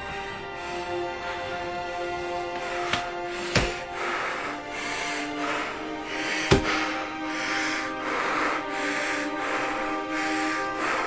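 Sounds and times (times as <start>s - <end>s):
background music: 0.0s - 11.0s
heavy breathing through respirator mask: 0.0s - 11.0s.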